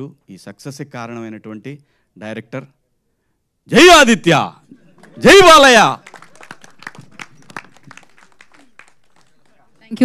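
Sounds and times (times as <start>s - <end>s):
scattered hand clapping: 5.0s - 10.0s.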